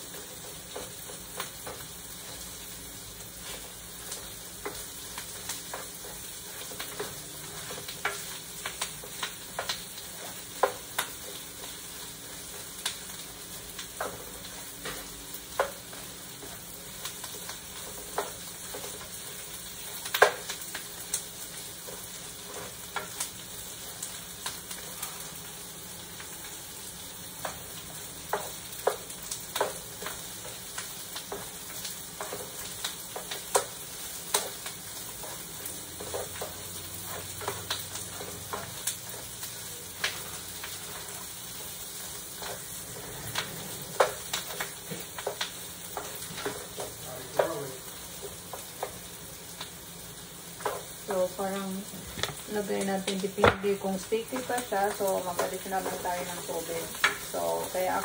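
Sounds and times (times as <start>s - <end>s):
onions sizzling in frying pan: 0.0s - 58.0s.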